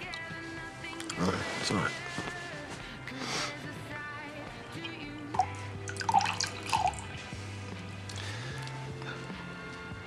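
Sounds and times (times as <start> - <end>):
soft background music: 0.0 - 10.0
wine glugging into a glass: 5.3 - 7.2.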